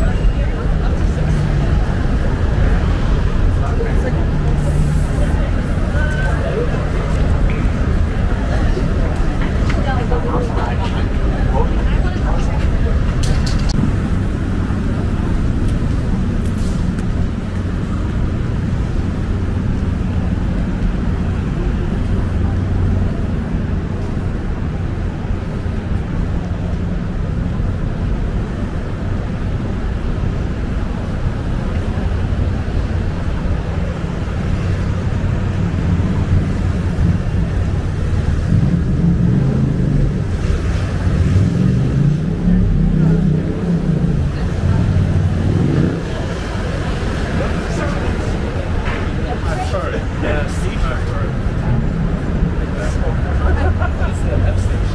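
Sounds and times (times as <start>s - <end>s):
traffic rumble: 0.0s - 54.9s.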